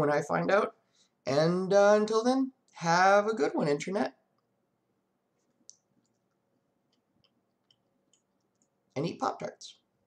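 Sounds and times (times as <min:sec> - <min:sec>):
weak steady hum: 0:00.0 - 0:10.0
faint small clicks: 0:05.4 - 0:08.8.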